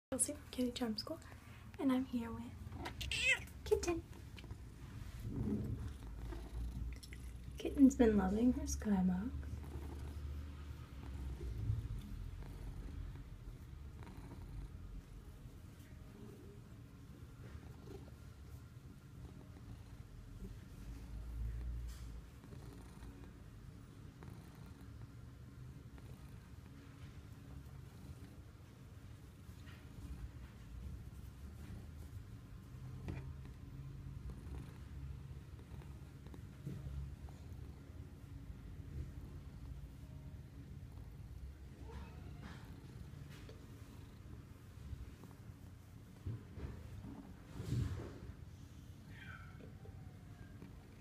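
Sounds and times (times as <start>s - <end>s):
cat purring: 2.0s - 51.0s.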